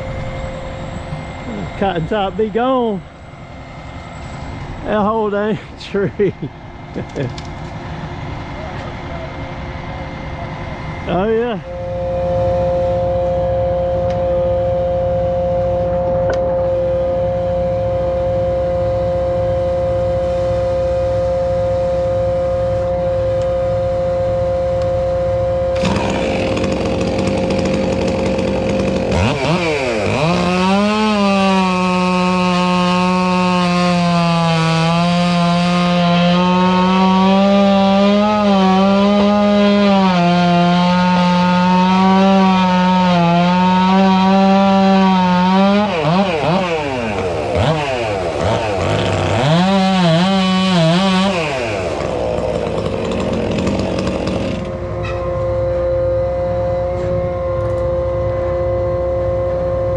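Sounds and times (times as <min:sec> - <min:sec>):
steady machine drone: 0:00.0 - 0:43.7, 0:45.1 - 0:59.9
chainsaw cutting tree trunk: 0:11.1 - 0:55.4.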